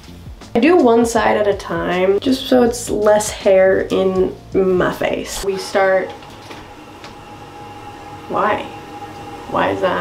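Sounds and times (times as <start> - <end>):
toilet cistern refilling: 5.5 - 10.0.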